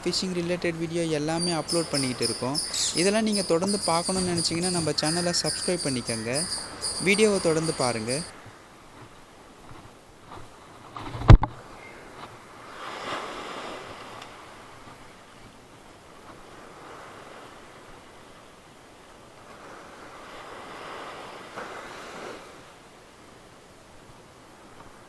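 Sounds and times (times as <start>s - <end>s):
surf washing on beach: 0.0s - 25.0s.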